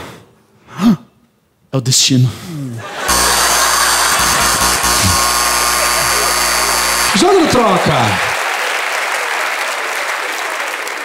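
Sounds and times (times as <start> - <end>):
loud held musical chord: 3.1 - 8.4.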